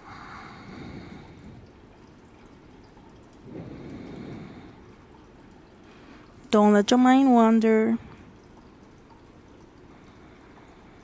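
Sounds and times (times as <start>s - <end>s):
slow breath: 0.0s - 1.7s
water fountain trickling: 0.0s - 11.0s.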